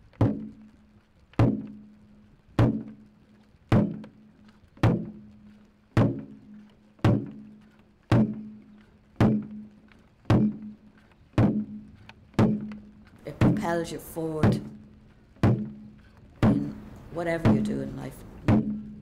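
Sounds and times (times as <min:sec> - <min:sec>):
deep drum beats: 0:00.0 - 0:19.0.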